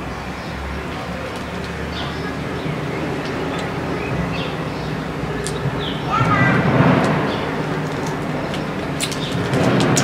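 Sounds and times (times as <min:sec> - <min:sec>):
passing vehicle engine rumble: 0:00.0 - 0:10.0.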